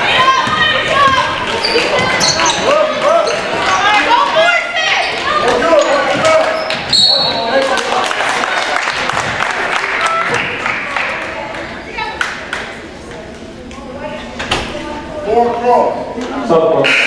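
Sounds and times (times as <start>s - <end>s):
players and spectators shouting: 0.0s - 7.8s.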